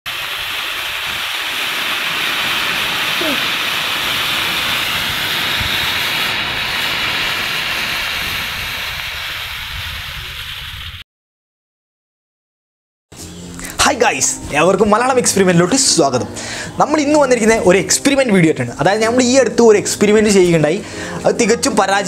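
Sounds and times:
burning mixture hissing: 0.1 - 11.0.

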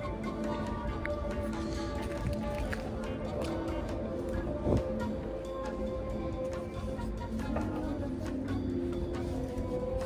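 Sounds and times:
music with long held notes: 0.0 - 10.0.

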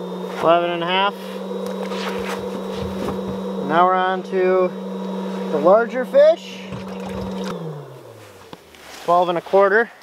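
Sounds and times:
electric motor humming: 0.0 - 8.8.

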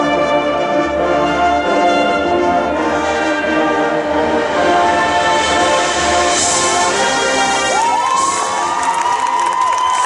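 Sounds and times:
brass and woodwinds chord: 0.0 - 8.8
percussion: 1.2 - 10.0.

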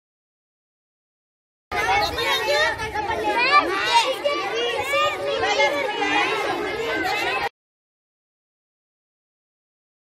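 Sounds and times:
children chattering: 1.7 - 7.5.

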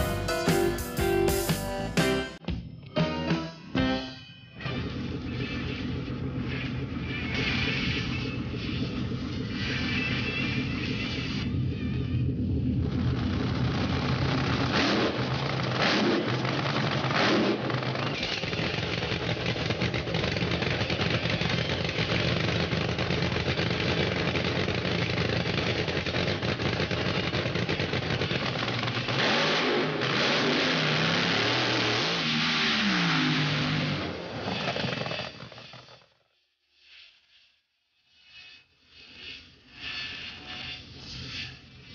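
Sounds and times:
drag racer engine running: 4.7 - 36.2
engine sharp cracks: 12.8 - 36.1.

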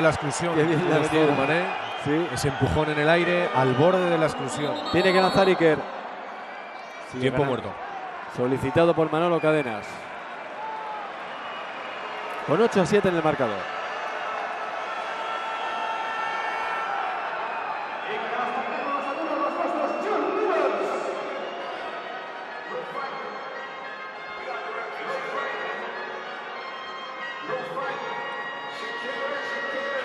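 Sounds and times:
echoing crowd chatter: 0.0 - 30.0
music playing: 0.0 - 30.0.

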